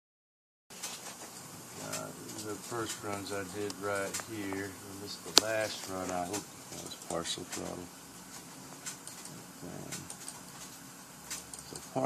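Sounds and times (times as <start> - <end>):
faint low hum: 0.9 - 12.0
person speaking: 1.7 - 8.0, 9.6 - 10.2.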